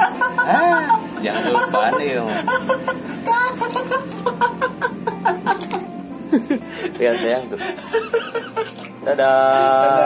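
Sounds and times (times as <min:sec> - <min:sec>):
man exclaiming and chuckling: 0:00.2 - 0:05.8.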